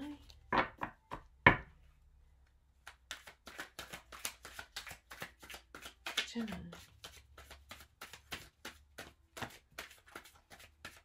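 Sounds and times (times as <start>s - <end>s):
cards being shuffled by hand: 2.8s - 11.0s.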